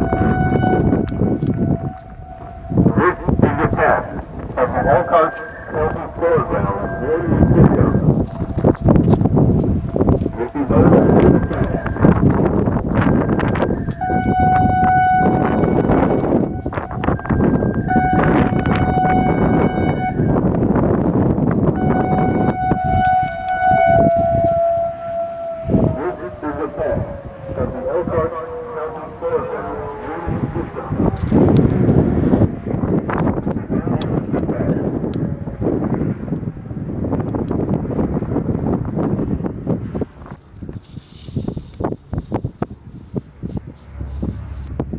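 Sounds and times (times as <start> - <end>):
low steady siren tone: 0.0 - 40.4, 41.4 - 44.9
two-tone warning siren: 0.0 - 40.4, 41.4 - 44.9
wind buffeting microphone: 0.0 - 44.9.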